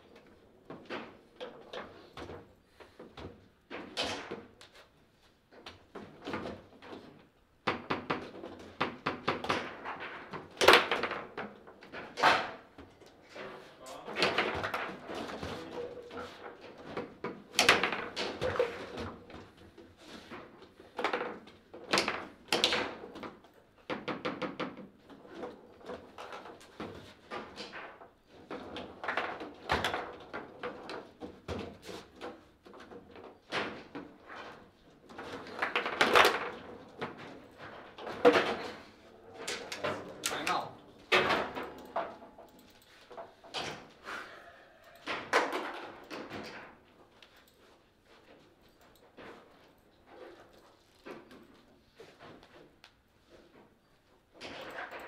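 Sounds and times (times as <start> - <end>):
foosball rods clacking: 35.4 - 44.0.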